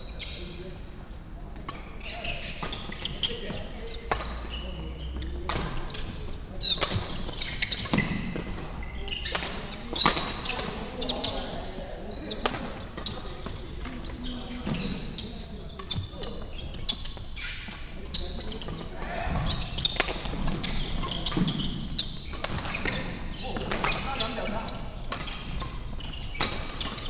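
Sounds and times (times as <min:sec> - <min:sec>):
shoes squeaking on wooden floor: 0:01.7 - 0:27.0.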